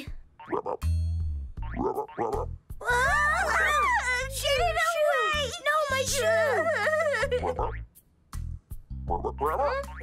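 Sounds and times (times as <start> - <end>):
background music with bass note: 0.4 - 4.8, 6.1 - 10.0.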